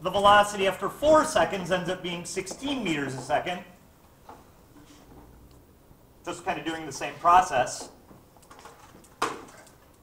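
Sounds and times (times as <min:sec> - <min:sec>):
faint room noise: 0:00.0 - 0:10.0.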